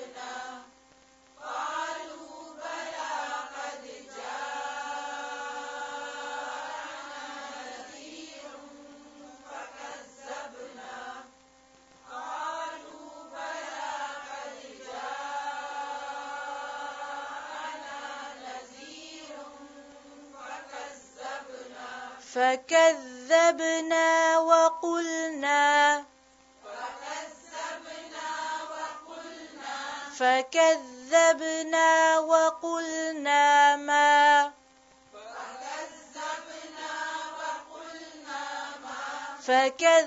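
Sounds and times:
woman reciting melodically: 0:17.4 - 0:40.0.

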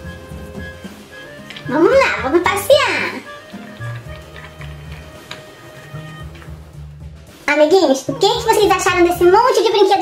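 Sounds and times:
background music with low bass: 0:00.0 - 0:10.0.

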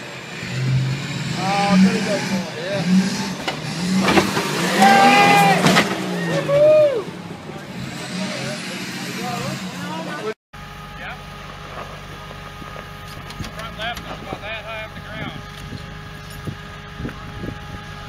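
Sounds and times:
buggy engine idling: 0:01.0 - 0:18.0
onlookers calling out: 0:04.6 - 0:10.3.

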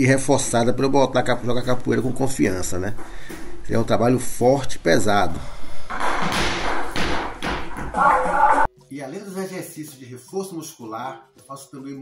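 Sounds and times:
medicine ball thudding on wooden floor: 0:06.0 - 0:08.0.

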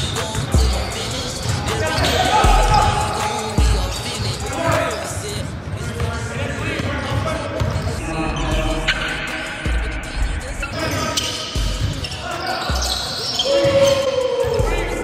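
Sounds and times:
players' voices: 0:00.0 - 0:15.0
basketballs bouncing on hardwood floor: 0:05.4 - 0:08.0.

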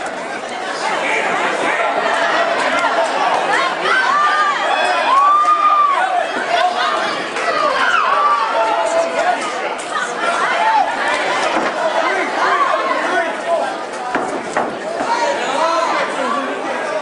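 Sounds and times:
crowd shouting and talking: 0:00.0 - 0:17.0.

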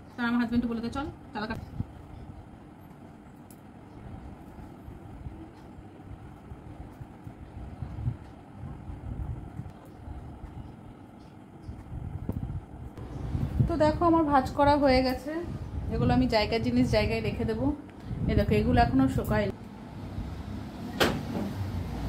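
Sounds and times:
low room rumble: 0:00.0 - 0:22.0.

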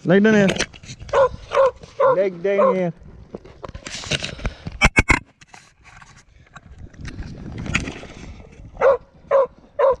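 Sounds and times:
hound barking: 0:01.1 - 0:02.8, 0:08.8 - 0:10.0.

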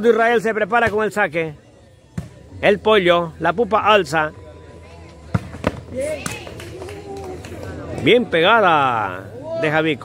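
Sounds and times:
spectators' voices and calls: 0:00.0 - 0:10.0.

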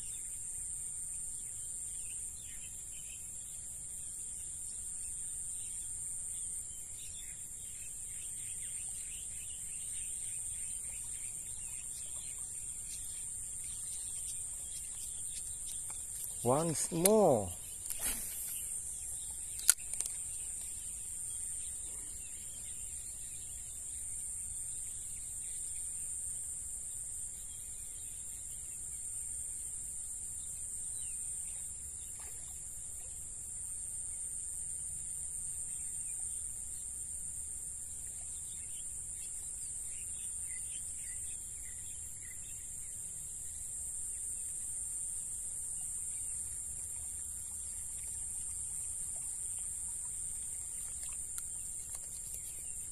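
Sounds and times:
insects chorus: 0:00.0 - 0:52.9
faint chirps: 0:04.0 - 0:26.0
sharp click: 0:19.5 - 0:20.2.

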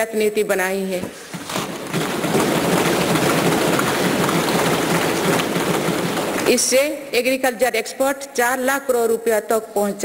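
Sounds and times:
hands thumping desks: 0:00.9 - 0:06.9.

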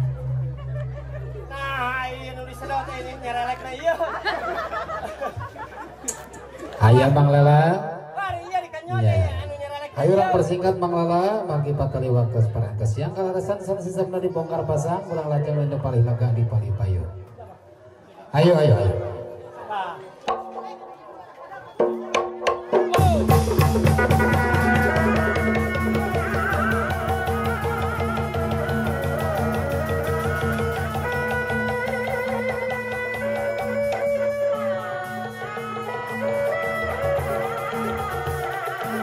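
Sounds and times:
gong ensemble dance music: 0:20.3 - 0:39.0.

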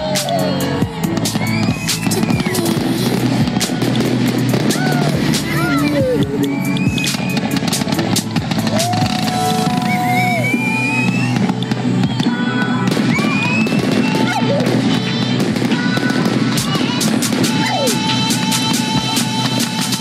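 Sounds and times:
firework whistles: 0:00.0 - 0:20.0
fireworks popping and crackling: 0:00.0 - 0:20.0
orchestral music: 0:00.0 - 0:20.0.

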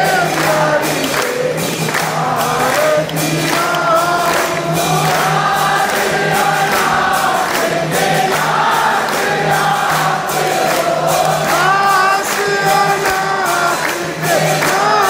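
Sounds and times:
group singing a hymn: 0:00.0 - 0:15.0
percussion strikes: 0:00.0 - 0:15.0.

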